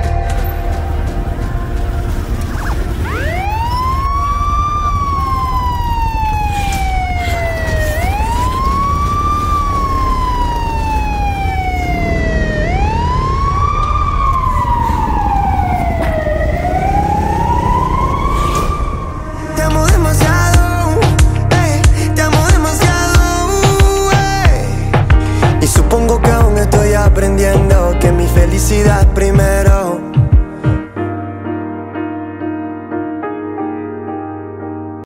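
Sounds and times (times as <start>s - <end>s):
louder music: 0.0s - 4.6s, 18.8s - 33.3s
steady low bass: 0.0s - 5.1s, 19.5s - 30.8s
wailing siren tone: 0.0s - 21.3s.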